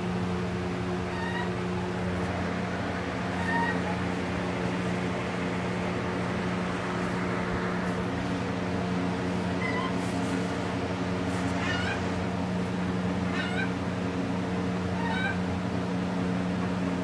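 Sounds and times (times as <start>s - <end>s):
steady low hum: 0.0s - 17.0s
chickens whining calls: 0.9s - 15.7s.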